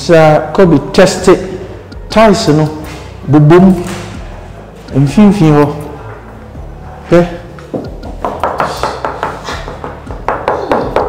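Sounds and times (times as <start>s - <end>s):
knuckle rapping on ceramic tiles: 7.6s - 11.0s.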